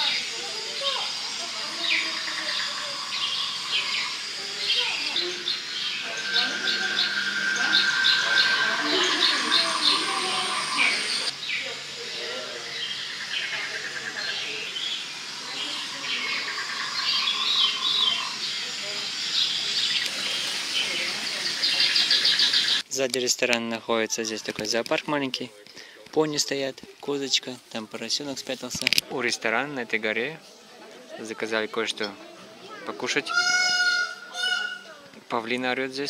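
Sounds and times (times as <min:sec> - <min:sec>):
small birds chirping: 0:00.0 - 0:22.8
steady background hiss: 0:00.0 - 0:30.7.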